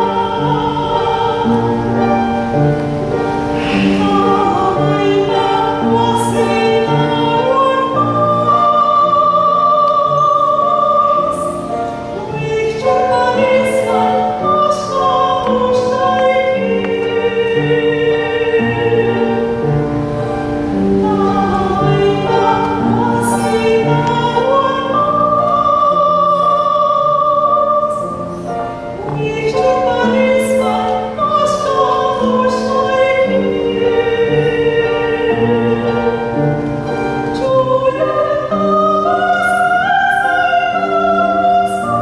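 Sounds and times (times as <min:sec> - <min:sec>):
woman singing operatically: 0:00.0 - 0:02.5, 0:03.4 - 0:42.0
grand piano chords: 0:00.0 - 0:42.0.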